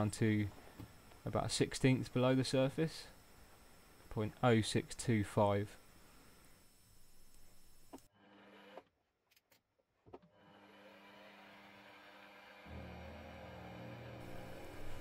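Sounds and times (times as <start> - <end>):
milling machine hum: 10.4 - 15.0.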